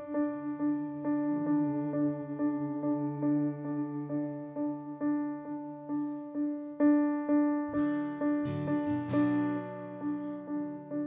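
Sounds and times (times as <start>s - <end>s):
electric piano repeating a note: 7.4s - 11.0s.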